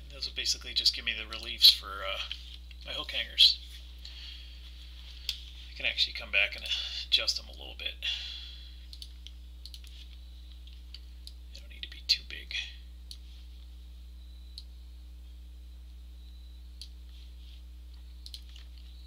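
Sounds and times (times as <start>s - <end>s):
steady low hum: 0.0s - 19.0s
computer mouse clicks: 8.9s - 10.0s, 18.2s - 18.8s.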